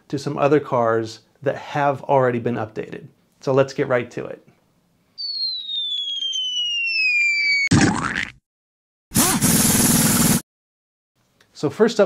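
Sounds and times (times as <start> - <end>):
burst of steady noise: 5.2 - 7.6
falling whistle: 5.2 - 7.7.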